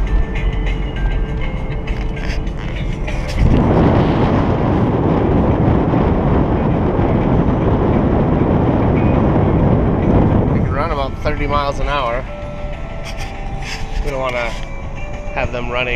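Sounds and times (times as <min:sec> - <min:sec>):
low cabin hum: 0:00.0 - 0:15.9
wind and road noise rush: 0:00.0 - 0:15.9.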